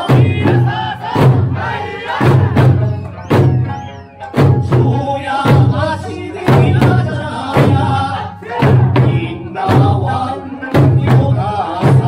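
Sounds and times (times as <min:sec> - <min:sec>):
barrel drums struck: 0:00.0 - 0:05.8
accompanying music: 0:00.0 - 0:12.0.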